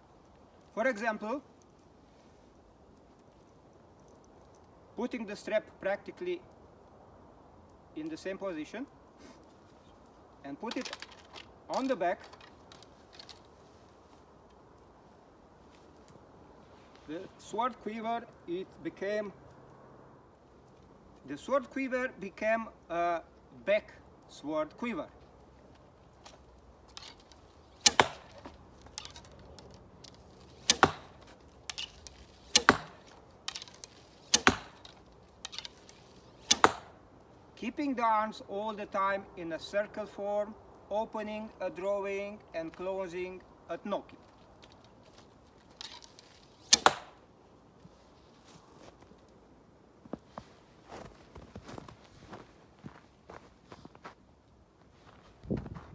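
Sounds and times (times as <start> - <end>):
arrows clicking and rattling: 10.6 - 13.5, 26.2 - 37.0, 45.6 - 47.2
footsteps in snow: 47.8 - 49.3, 50.0 - 55.9.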